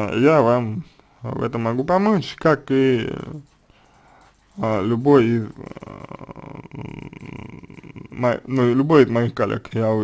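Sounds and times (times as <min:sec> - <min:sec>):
man's creaky hesitation vowel: 0:05.4 - 0:08.6.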